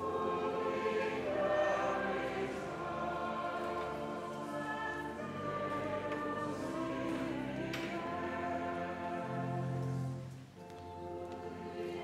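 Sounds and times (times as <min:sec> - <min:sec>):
mixed choir singing: 0:00.0 - 0:10.3, 0:11.2 - 0:12.0.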